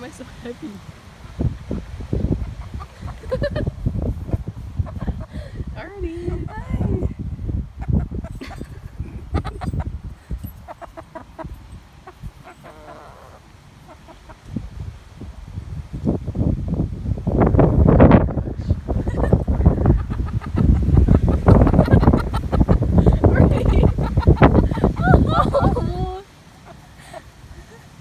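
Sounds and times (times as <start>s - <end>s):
hens clucking: 2.2s - 7.1s, 7.8s - 14.5s, 18.9s - 27.3s.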